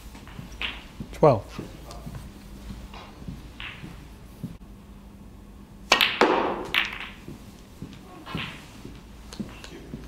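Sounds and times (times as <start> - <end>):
snooker balls clicking together: 0.2 - 2.0, 2.9 - 4.0, 5.9 - 10.0
cue striking ball: 3.0 - 4.0, 5.9 - 7.4, 8.2 - 8.7.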